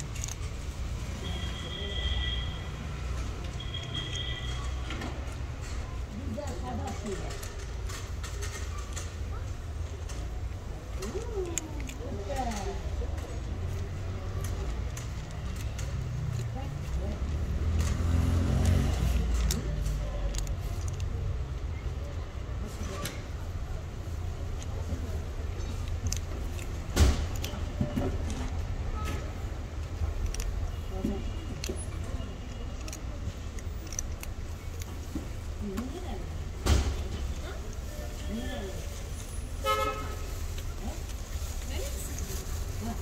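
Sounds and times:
kitten crunching dry kibble: 0:00.0 - 0:01.2, 0:06.8 - 0:21.7, 0:22.6 - 0:28.7, 0:29.4 - 0:35.6
vehicle engine rumbling: 0:00.0 - 0:43.0.

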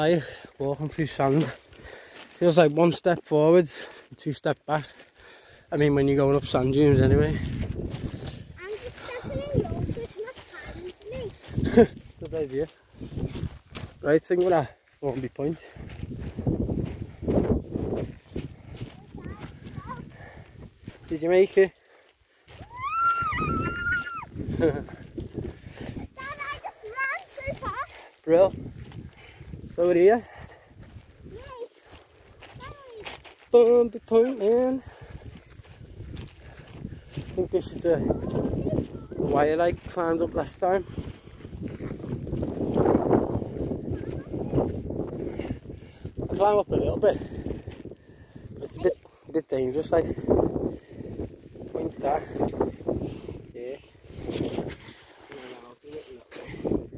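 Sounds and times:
footsteps in soft sand: 0:00.0 - 0:56.9
wind buffeting microphone: 0:06.0 - 0:14.0, 0:15.7 - 0:21.1, 0:22.5 - 0:33.3, 0:34.8 - 0:55.3, 0:56.4 - 0:56.9
microphone handling rustle: 0:06.9 - 0:12.4, 0:54.1 - 0:55.7.

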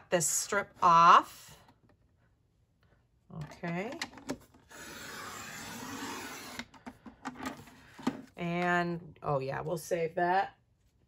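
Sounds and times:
paper trimmer blade scraping: 0:04.7 - 0:06.7.

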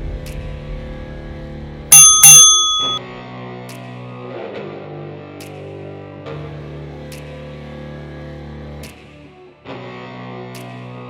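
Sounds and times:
bell-like timer strikes: 0:01.9 - 0:03.0.

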